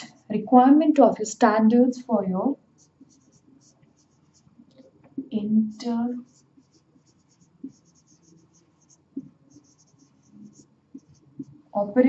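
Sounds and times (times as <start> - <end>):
marker writing on whiteboard: 2.8 - 4.5, 6.2 - 11.6.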